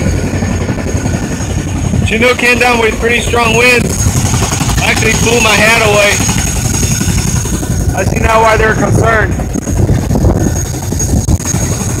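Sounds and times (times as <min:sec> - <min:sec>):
high-pitched engine whine: 0:00.0 - 0:12.0
large engine rumbling: 0:00.0 - 0:12.0.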